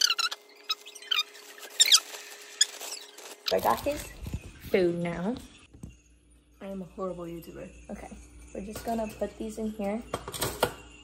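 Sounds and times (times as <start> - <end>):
plastic bag crinkling: 0.0 - 5.2.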